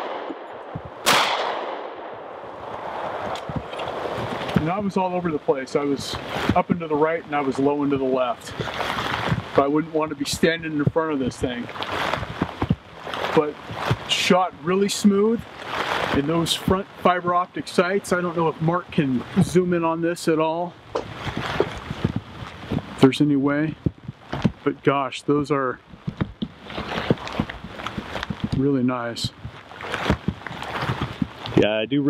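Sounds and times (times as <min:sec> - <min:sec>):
steady rain falling: 0:00.8 - 0:32.0
soft rustle of jacket: 0:03.4 - 0:20.3, 0:21.0 - 0:24.7, 0:26.5 - 0:31.8.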